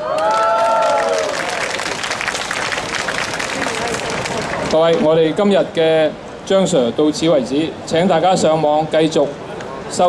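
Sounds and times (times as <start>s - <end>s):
crowd cheering: 0.0s - 4.7s
audience applauding: 0.1s - 4.7s.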